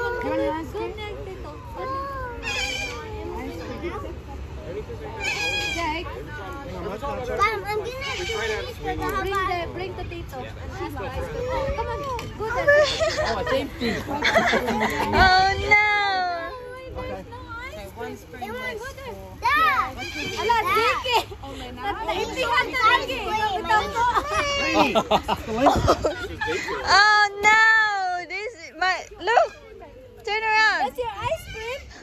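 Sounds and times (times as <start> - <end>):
children and adults talking: 0.0 - 32.0
low chatter: 0.0 - 32.0
young children crying out: 23.6 - 25.0.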